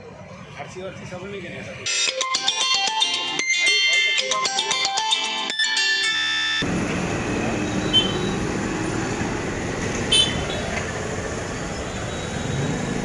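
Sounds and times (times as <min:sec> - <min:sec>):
road traffic noise: 0:00.0 - 0:13.0.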